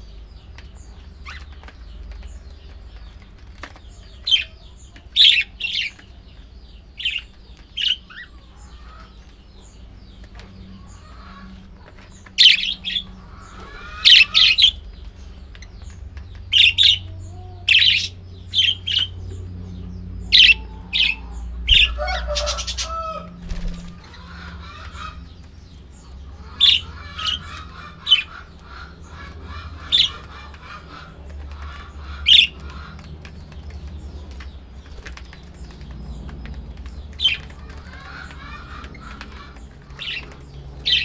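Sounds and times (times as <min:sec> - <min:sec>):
sharp loud bird calls: 0:00.0 - 0:41.0
budgerigars chirping: 0:00.3 - 0:41.0.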